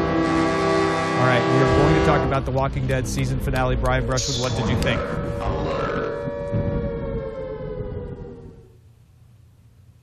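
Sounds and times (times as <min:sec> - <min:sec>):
siren-like tone sliding down: 0:03.0 - 0:08.8.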